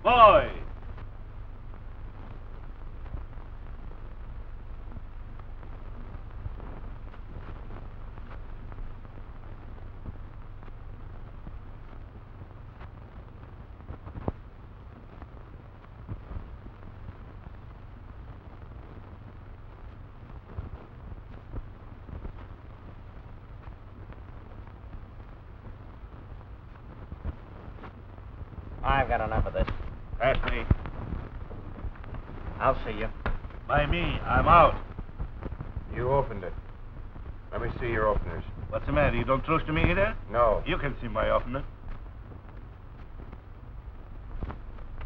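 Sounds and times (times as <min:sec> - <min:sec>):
faint clicks and crackles: 0:00.0 - 0:45.0
film soundtrack hiss and hum: 0:00.0 - 0:45.0.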